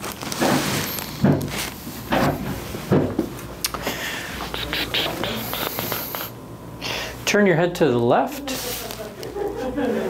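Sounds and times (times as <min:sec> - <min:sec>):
breathy noise: 0:03.7 - 0:07.2
person murmuring and grunting: 0:04.5 - 0:06.4.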